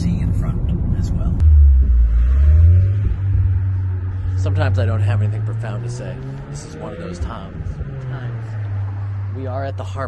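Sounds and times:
loud low rumble: 0.0s - 6.0s.

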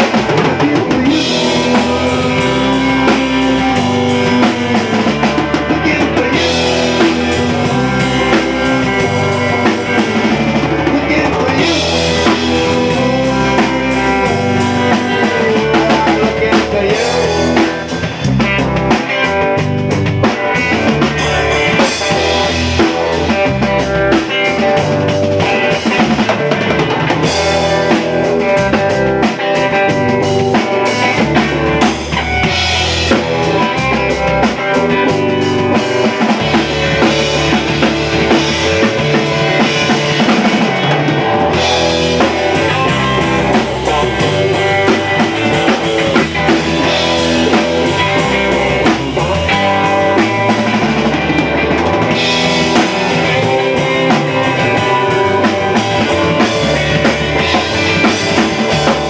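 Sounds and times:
drum kit: 0.0s - 59.0s
electric guitar: 0.0s - 59.0s.

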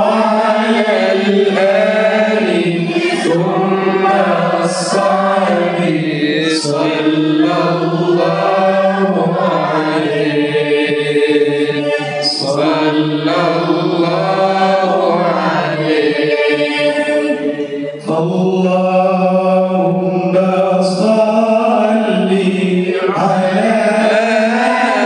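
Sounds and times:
man chanting into microphone: 0.0s - 25.0s.

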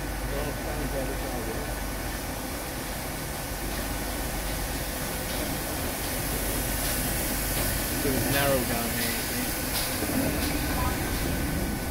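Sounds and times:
steam locomotive running past: 0.0s - 11.9s.

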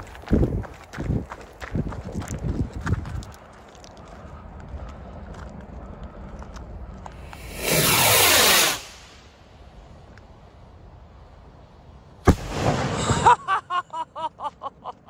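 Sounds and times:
firework rocket whoosh: 7.2s - 9.5s, 12.3s - 13.3s.

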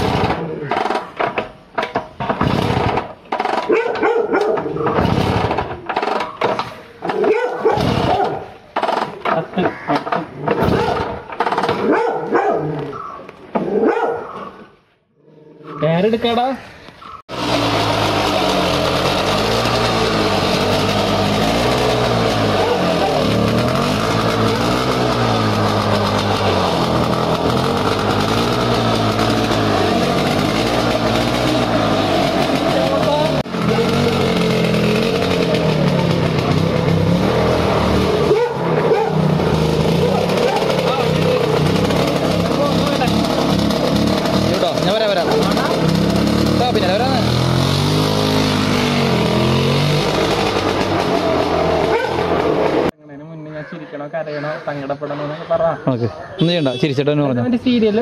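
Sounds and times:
scooter engine revving: 0.0s - 14.3s, 17.2s - 53.0s.

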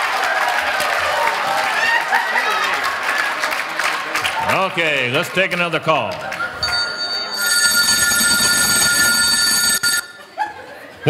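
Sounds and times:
telephone ringing: 6.4s - 10.3s.

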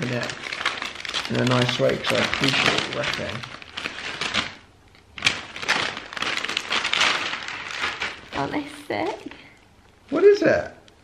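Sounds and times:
sharp crackle: 0.0s - 10.3s
gift wrap rustling and tearing: 0.0s - 10.6s
plastic bag crinkling: 0.0s - 10.6s.

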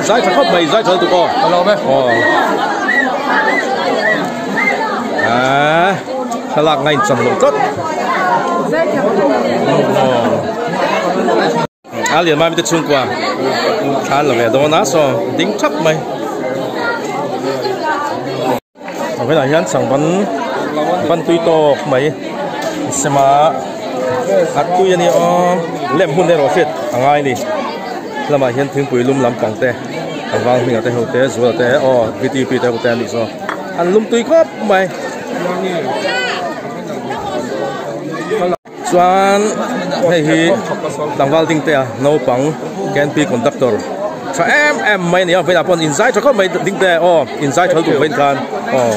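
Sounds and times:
people chatting: 0.0s - 48.9s
people talking at once: 0.0s - 48.9s.

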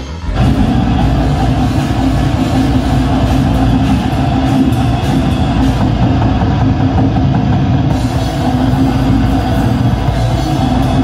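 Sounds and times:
live metal band playing loudly: 0.3s - 11.0s.

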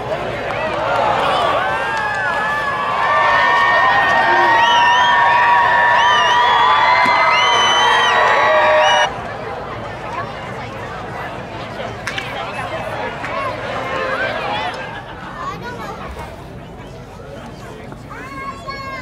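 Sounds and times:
crowd chatter: 0.0s - 19.0s.

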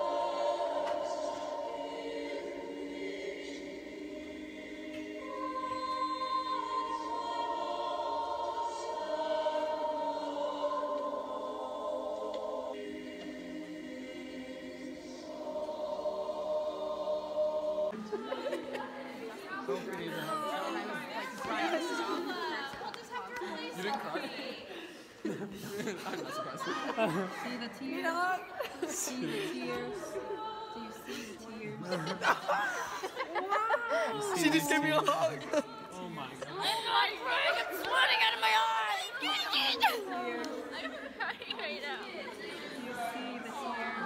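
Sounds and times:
group chatter: 17.9s - 44.0s.

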